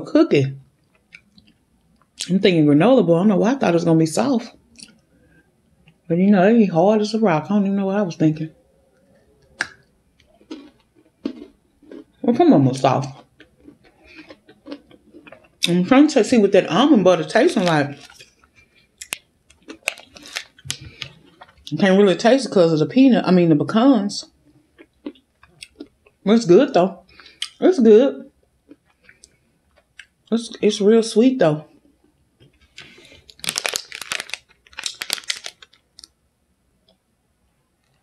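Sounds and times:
person chewing crunchy food: 9.4s - 15.8s, 17.4s - 21.7s, 24.4s - 26.2s, 28.4s - 30.2s, 31.9s - 36.1s
plastic wrapper crinkling: 17.1s - 21.8s, 32.4s - 36.2s.

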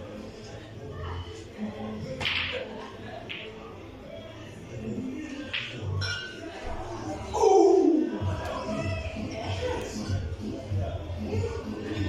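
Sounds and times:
snooker balls colliding: 2.2s - 2.7s.

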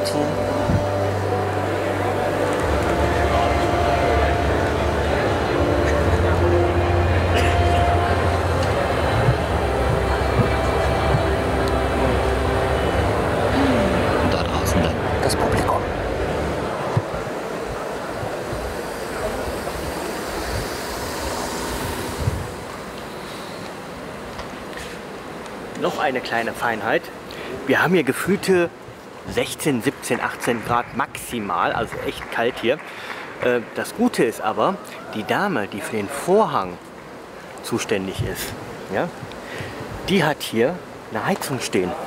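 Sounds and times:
muffled voice-like sound: 0.0s - 16.0s
steady low hum: 0.0s - 29.8s
ventilation air rushing: 0.0s - 30.1s.

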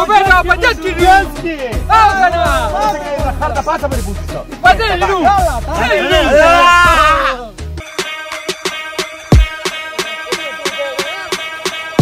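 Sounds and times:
background music with percussive hits: 0.0s - 12.0s
person crying out: 5.9s - 7.5s.

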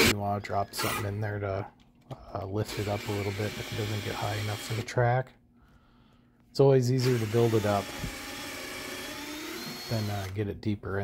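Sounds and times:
power drill running: 2.6s - 4.9s, 7.0s - 10.4s.

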